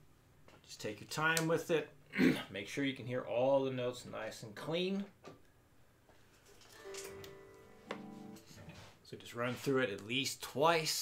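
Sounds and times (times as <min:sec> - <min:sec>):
electric guitar notes plucked: 0:06.9 - 0:08.6.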